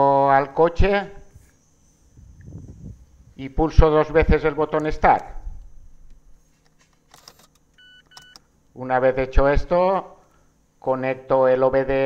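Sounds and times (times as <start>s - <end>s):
dashboard electronic beep: 7.8s - 8.4s.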